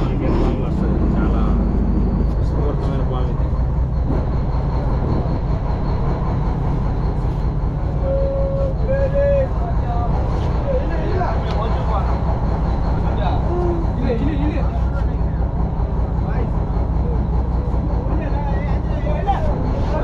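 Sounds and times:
boat engine humming: 0.0 - 20.0.

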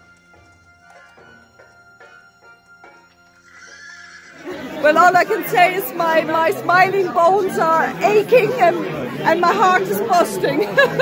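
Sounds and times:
horse whinny: 3.4 - 4.5
woman's voice: 4.8 - 11.0.

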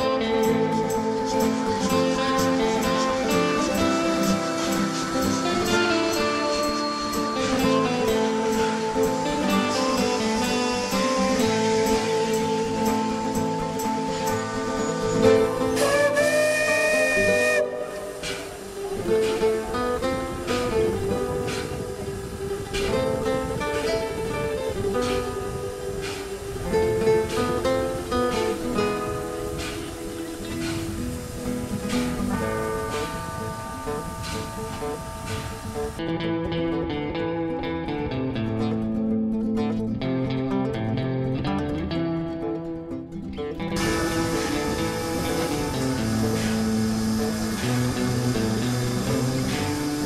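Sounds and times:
guitar music: 0.0 - 50.0
hiss of steam: 0.1 - 36.0, 43.8 - 50.0
steam locomotive whistle: 1.0 - 22.9, 29.1 - 36.0, 43.8 - 50.0.

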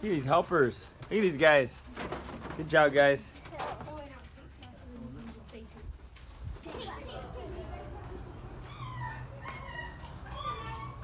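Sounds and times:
background chatter: 0.0 - 11.0
faint children's voices: 3.3 - 11.0
high-pitched child's voice: 6.6 - 7.9.

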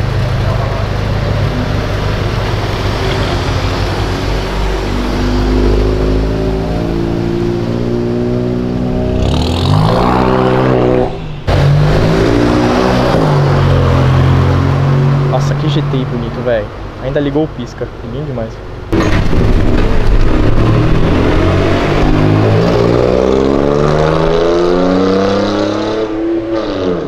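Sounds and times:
car engine revving: 0.0 - 16.4, 18.9 - 27.0.

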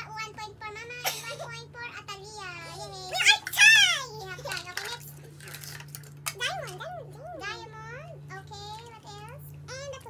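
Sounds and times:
plastic toys clattering on table: 4.4 - 6.8.

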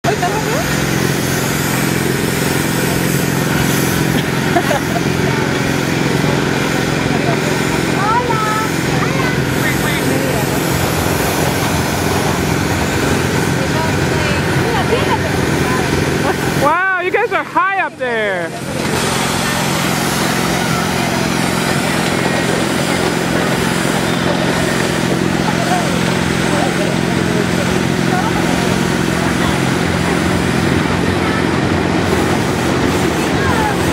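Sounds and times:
ride mechanical hum: 0.0 - 33.9
voices: 0.0 - 33.9.

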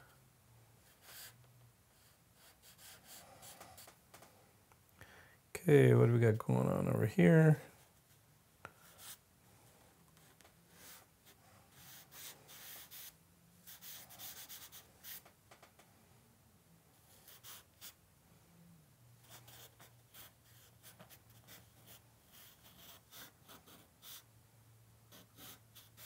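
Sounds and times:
charcoal scratching on paper: 11.7 - 15.2, 17.2 - 18.0, 19.3 - 24.3, 25.1 - 26.0.

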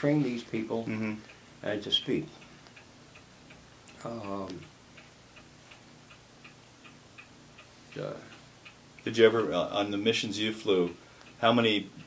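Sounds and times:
man saying uh: 0.0 - 2.3, 4.0 - 4.6
clock ticking: 0.0 - 12.0.

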